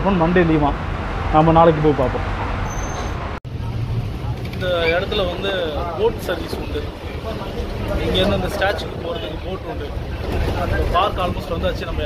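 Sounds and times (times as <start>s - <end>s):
bus engine rumble: 0.0s - 12.0s
road noise: 0.0s - 12.0s.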